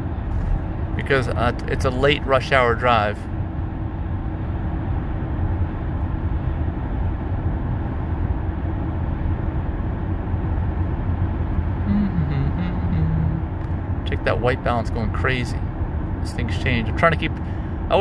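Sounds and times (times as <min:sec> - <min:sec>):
road and tyre noise in car: 0:00.0 - 0:18.0.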